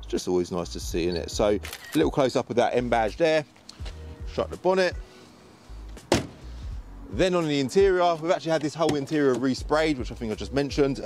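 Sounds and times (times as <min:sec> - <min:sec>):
car bonnet slamming shut: 0:06.0 - 0:06.5.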